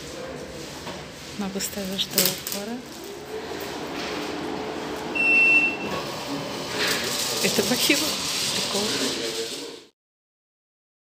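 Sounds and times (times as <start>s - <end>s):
dispenser motor humming: 2.5s - 9.4s
short high beep: 5.1s - 6.0s.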